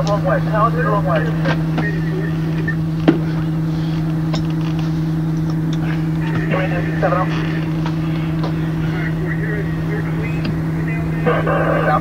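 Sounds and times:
faint voices: 0.0s - 4.2s, 5.8s - 12.0s
diesel engine running: 0.0s - 12.0s.

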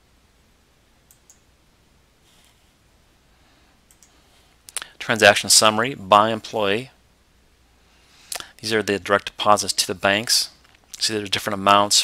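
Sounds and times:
computer mouse clicks: 1.1s - 1.5s, 3.9s - 4.9s.

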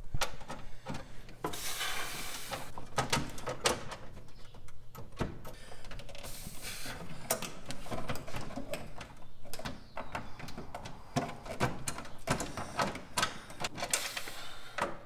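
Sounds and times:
small clicks and knocks: 7.0s - 14.2s.

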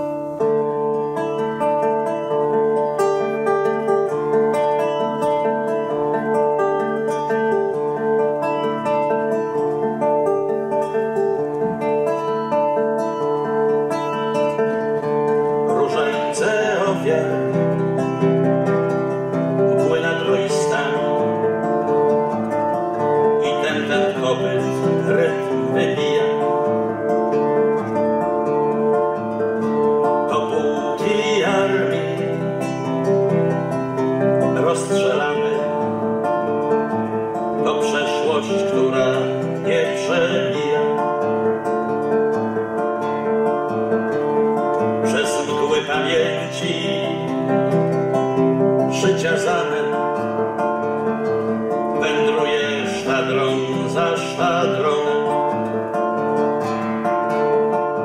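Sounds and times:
classical guitar fingerstyle: 0.0s - 58.0s
man singing a ballad: 15.4s - 18.2s, 19.4s - 22.0s, 23.2s - 27.1s, 30.2s - 33.0s, 34.4s - 36.7s, 37.5s - 41.4s, 44.9s - 48.1s, 48.8s - 50.6s, 51.8s - 56.0s.

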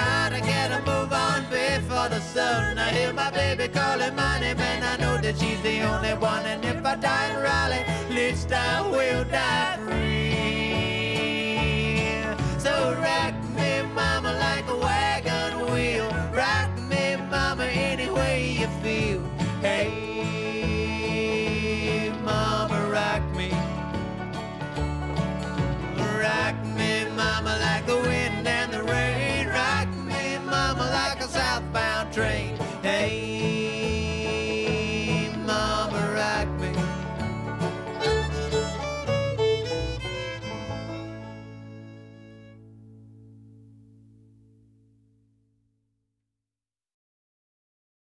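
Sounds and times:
banjo: 0.0s - 42.7s
fiddle: 0.0s - 42.7s
upright bass: 0.0s - 44.9s
guitar: 0.0s - 45.2s.

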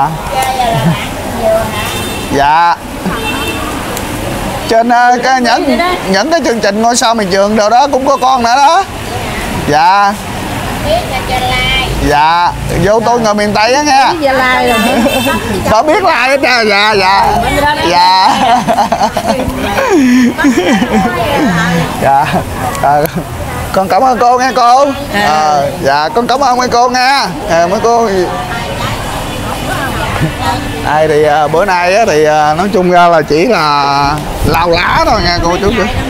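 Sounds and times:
faint indistinct voices: 0.0s - 36.0s
people talking quietly: 0.0s - 36.0s
steady noisy rumble: 0.0s - 36.0s
man's voice: 4.7s - 8.9s, 12.0s - 14.2s, 15.6s - 28.4s, 30.8s - 36.0s.

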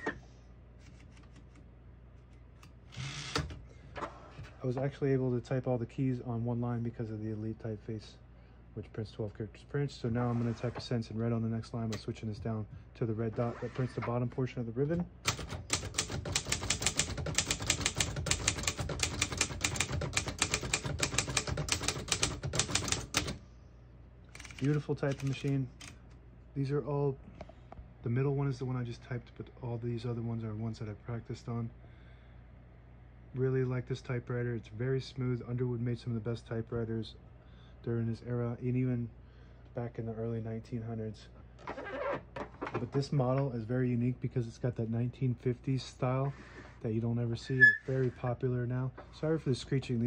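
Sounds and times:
typewriter keystrokes: 15.2s - 23.4s, 24.4s - 26.0s
typewriter carriage sliding rasp: 15.3s - 23.4s, 24.4s - 25.9s.

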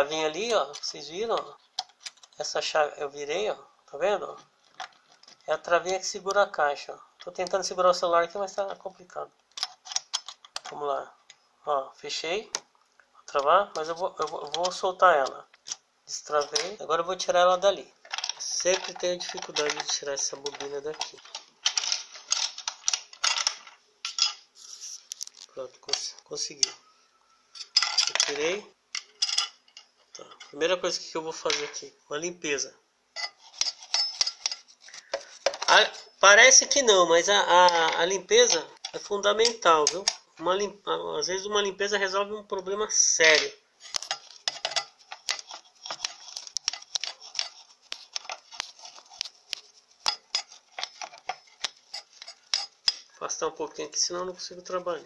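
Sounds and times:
brush scrubbing metal: 44.1s - 52.8s.

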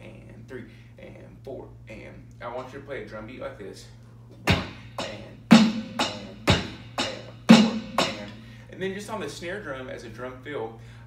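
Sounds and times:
electronic drum kit rock beat: 4.4s - 8.5s.

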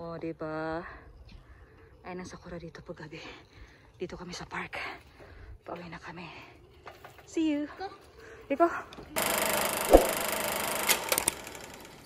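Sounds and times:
sharp clicks: 9.2s - 12.0s.

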